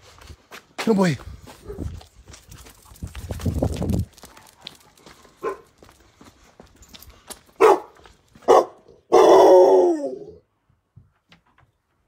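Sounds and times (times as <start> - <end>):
rough scuffing noise: 0.0 - 8.8
dog barking: 5.4 - 5.7, 7.6 - 10.3.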